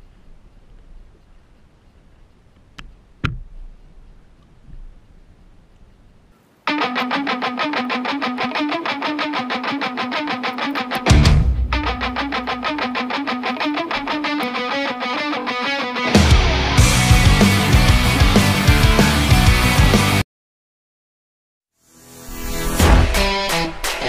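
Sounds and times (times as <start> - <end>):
distorted electric guitar riff: 6.7 - 20.2
bass guitar: 10.8 - 13.0, 16.0 - 20.2
heavy drums: 11.0 - 12.7, 16.1 - 20.2, 22.8 - 24.0.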